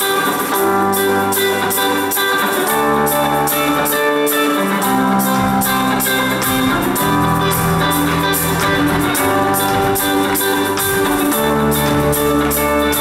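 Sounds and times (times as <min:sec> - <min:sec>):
electric guitar: 0:00.0 - 0:13.0
steady drum beat: 0:00.0 - 0:13.0
electric bass: 0:00.6 - 0:04.0, 0:04.8 - 0:13.0.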